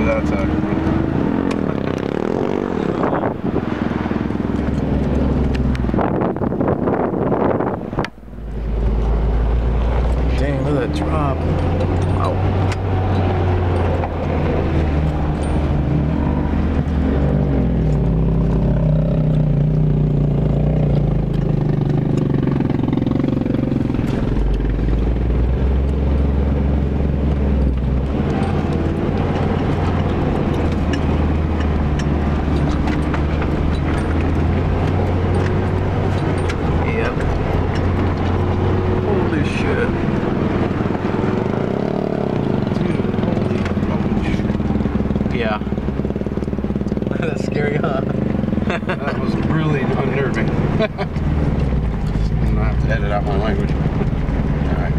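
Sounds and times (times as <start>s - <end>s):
vehicle engine under load: 0.0s - 54.9s
knocks and rattles: 27.3s - 39.0s.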